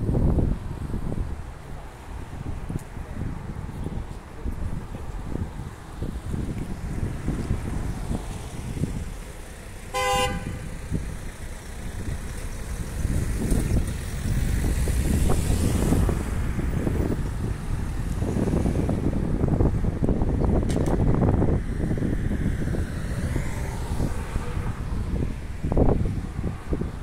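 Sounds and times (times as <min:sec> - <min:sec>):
road traffic rumble: 0:00.0 - 0:27.0
car horn toot: 0:09.9 - 0:10.7.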